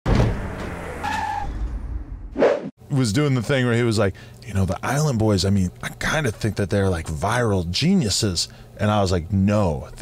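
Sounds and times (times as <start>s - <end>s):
tyres screeching: 0.8s - 1.6s.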